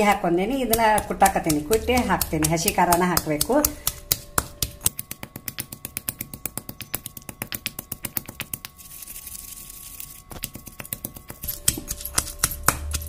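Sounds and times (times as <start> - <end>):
stone pestle pounding in mortar: 0.0 - 8.6, 10.4 - 13.0.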